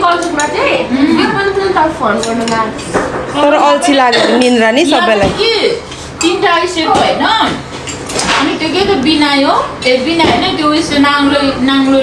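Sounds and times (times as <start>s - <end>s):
women talking: 0.0s - 7.7s, 8.3s - 12.0s
spoons clinking on ceramic bowls: 4.0s - 4.8s.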